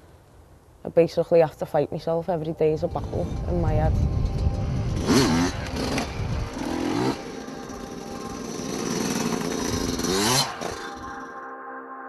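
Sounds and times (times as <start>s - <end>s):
motorbike engine revving: 2.8s - 11.3s.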